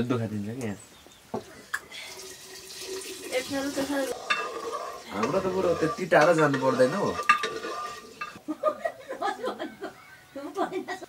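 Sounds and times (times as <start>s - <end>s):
water pouring into pot: 2.0s - 8.4s
spoon clinking against pot: 4.1s - 8.4s.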